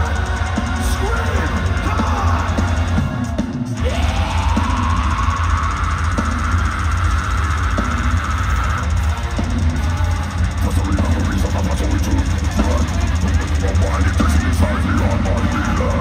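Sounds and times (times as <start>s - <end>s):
bass: 0.0s - 16.0s
drum kit: 0.0s - 16.0s
heavy distorted guitars: 0.0s - 16.0s.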